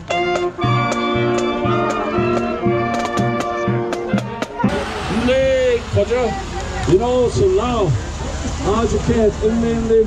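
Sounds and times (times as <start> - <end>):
marching band playing: 0.0 - 10.0
steady background noise: 0.0 - 10.0.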